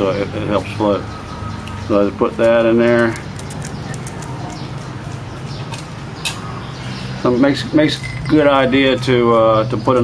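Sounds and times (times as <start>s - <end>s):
dry fibres crackling in hands: 3.0s - 4.6s.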